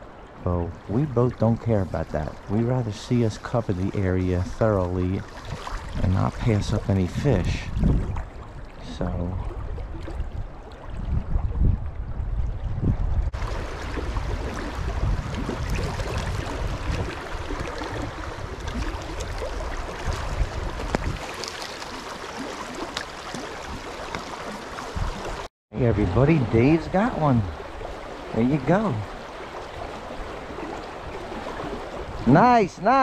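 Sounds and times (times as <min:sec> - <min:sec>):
creek water rushing: 0:00.0 - 0:11.0, 0:13.4 - 0:33.0.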